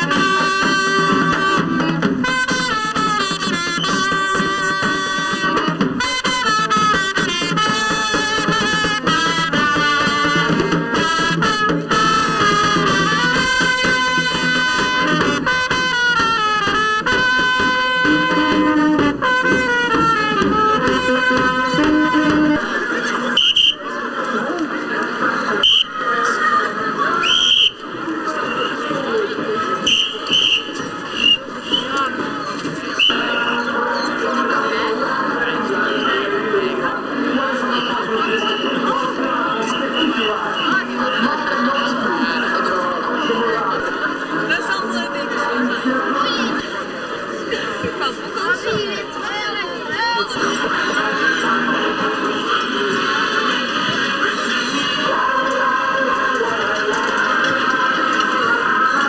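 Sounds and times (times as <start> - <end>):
street band playing brass and drums: 0.0 - 59.0
voices: 0.0 - 59.0.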